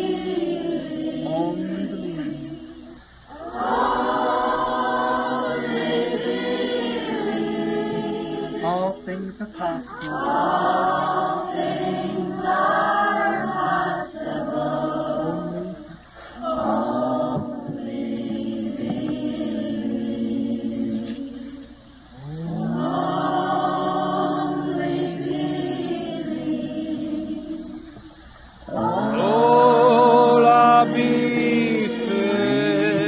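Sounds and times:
group singing a hymn: 0.0s - 33.0s.

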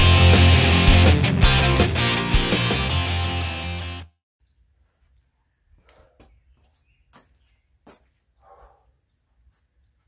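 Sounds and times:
faint footsteps on garage floor: 4.7s - 10.0s.

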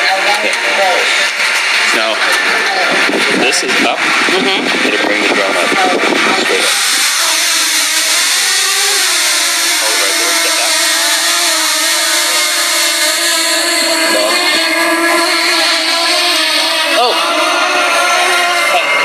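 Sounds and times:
drone propellers buzzing: 0.0s - 19.0s.

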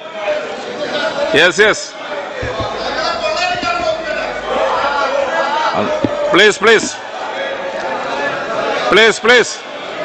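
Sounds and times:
many voices talking: 0.0s - 10.0s.

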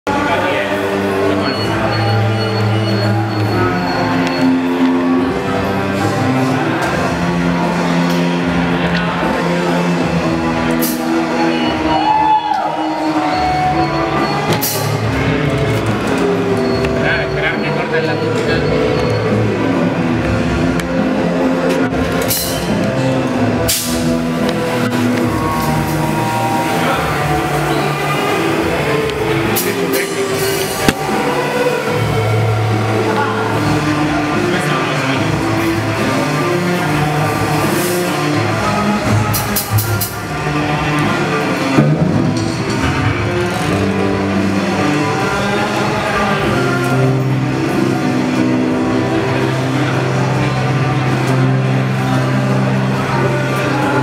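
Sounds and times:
drums: 0.1s - 54.0s
electric guitars droning chords: 0.1s - 54.0s
rock band playing: 18.2s - 54.0s
drum strokes: 39.0s - 44.6s.

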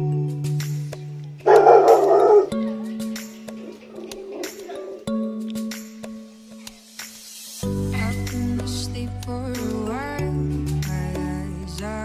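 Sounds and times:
background music: 0.0s - 12.0s
dog barking: 1.4s - 2.9s, 3.6s - 5.1s.

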